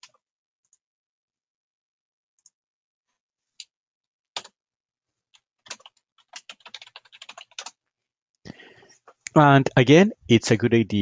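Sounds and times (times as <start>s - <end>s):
computer keyboard typing: 4.4s - 4.6s, 5.6s - 7.8s.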